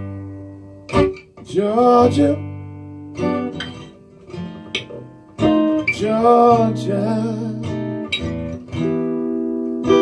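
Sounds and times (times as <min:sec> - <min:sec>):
acoustic guitar chords: 0:00.0 - 0:10.0
person singing: 0:01.5 - 0:02.4, 0:05.8 - 0:07.8.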